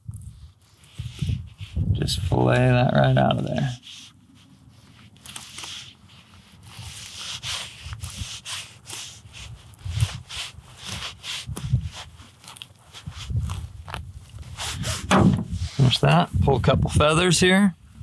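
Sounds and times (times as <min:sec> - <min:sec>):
knife scraping and ripping meat: 0:00.0 - 0:01.9, 0:03.1 - 0:15.9.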